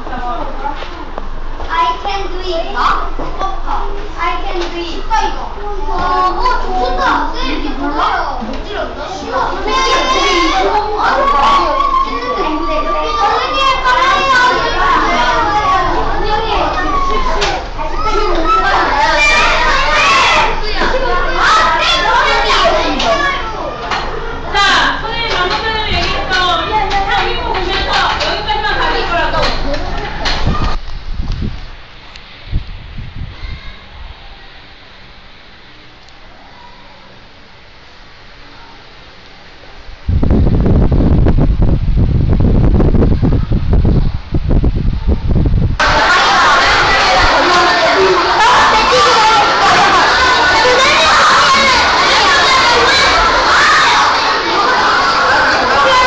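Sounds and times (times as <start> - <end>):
fan wind buffeting microphone: 0.0 - 56.0
young children talking and calling out: 0.5 - 30.8, 33.2 - 34.9, 36.2 - 37.3, 45.8 - 56.0.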